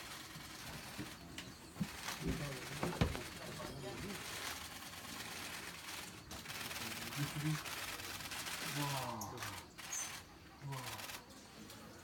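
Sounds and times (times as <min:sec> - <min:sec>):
low murmured voices: 0:00.0 - 0:12.0.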